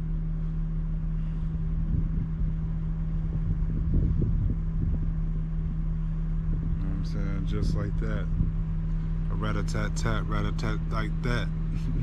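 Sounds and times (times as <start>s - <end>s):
motor humming and rumbling: 0.0s - 12.0s.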